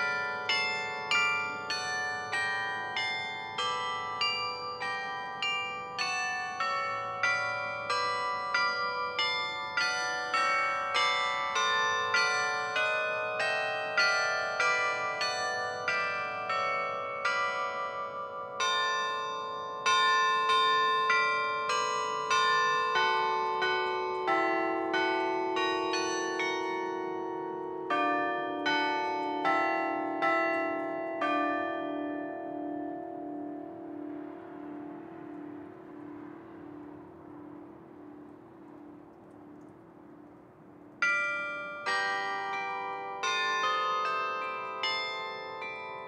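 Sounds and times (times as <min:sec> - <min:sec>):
carillon bells playing: 0:00.0 - 0:39.0, 0:41.0 - 0:46.0.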